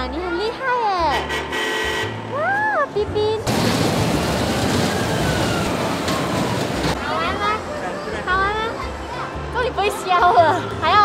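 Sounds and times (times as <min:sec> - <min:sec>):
ride rushing noise: 0:03.5 - 0:07.1.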